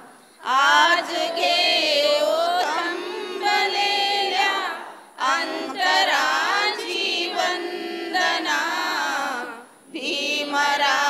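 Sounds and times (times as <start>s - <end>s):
group of women singing: 0.0s - 11.0s.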